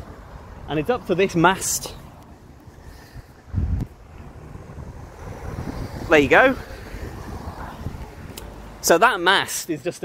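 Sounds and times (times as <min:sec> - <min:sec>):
wind buffeting microphone: 0:02.2 - 0:08.8.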